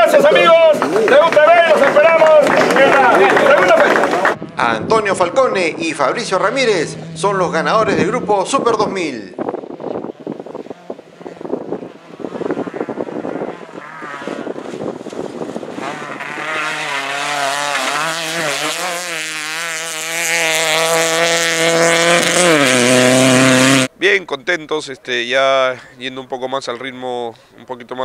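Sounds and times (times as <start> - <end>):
rally car engine revving: 0.0 - 23.9.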